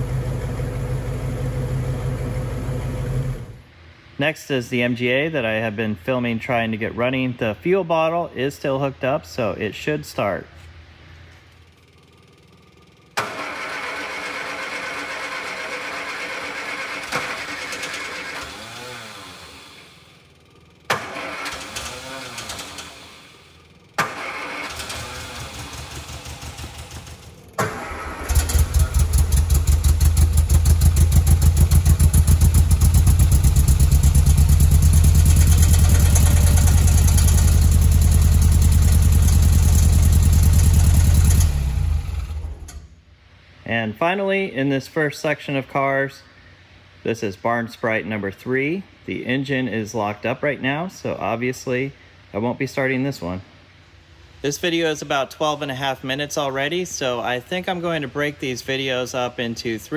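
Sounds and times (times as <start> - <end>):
car engine running: 0.0 - 3.6, 24.2 - 42.8
starter motor cranking: 12.4 - 42.9.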